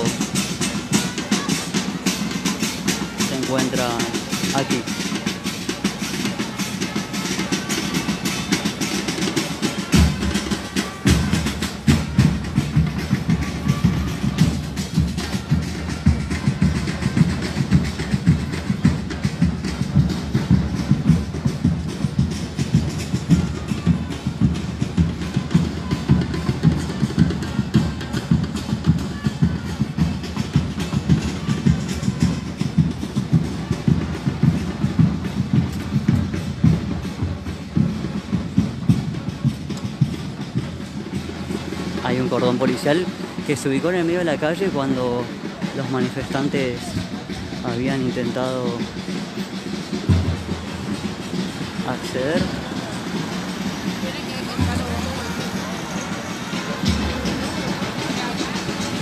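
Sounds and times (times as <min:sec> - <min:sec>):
rhythmic drumbeat: 0:00.0 - 0:59.0.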